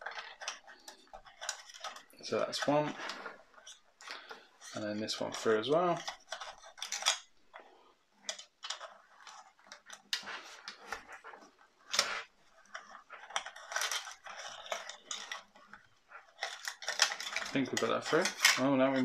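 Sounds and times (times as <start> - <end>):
handling clicks taps and rustles: 0.0 - 19.0.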